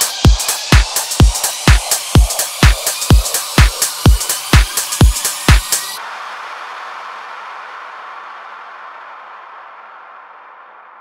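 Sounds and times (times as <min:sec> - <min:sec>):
house music kick-drum beat: 0:00.0 - 0:06.4
hissing wash of noise: 0:00.0 - 0:11.0.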